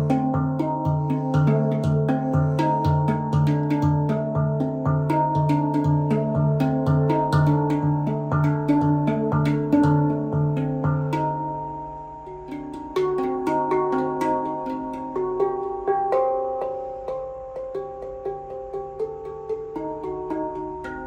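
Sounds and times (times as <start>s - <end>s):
handpan bass note: 0.0s - 21.0s
handpan ringing melody: 0.0s - 21.0s.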